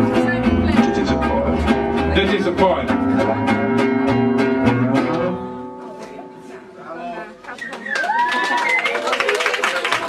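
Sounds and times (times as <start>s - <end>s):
guitar and double bass: 0.0s - 7.3s
audience clapping: 7.4s - 10.0s
cheering whoop: 7.8s - 9.6s.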